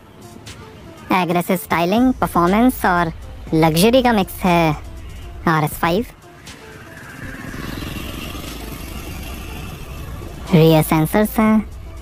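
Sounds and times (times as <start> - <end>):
car exhaust pulsing rumble: 2.0 - 12.0.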